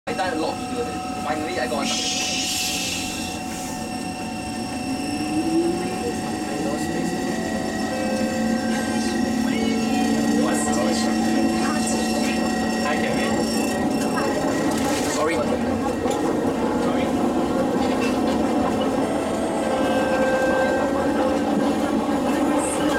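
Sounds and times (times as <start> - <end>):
train ride noise with whine: 0.1 - 22.9.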